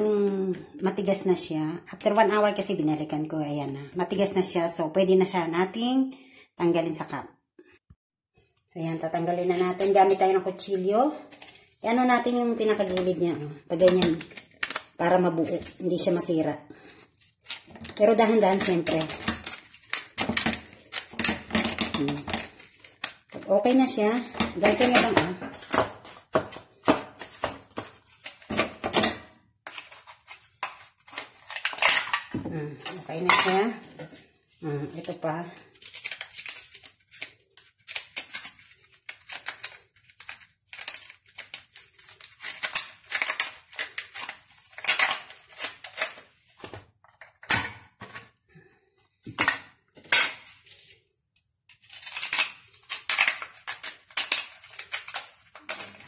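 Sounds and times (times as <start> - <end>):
foil crinkling: 14.2 - 16.2, 16.8 - 28.5, 34.6 - 47.2, 51.8 - 56.0
knife scraping foil cup: 29.7 - 32.3.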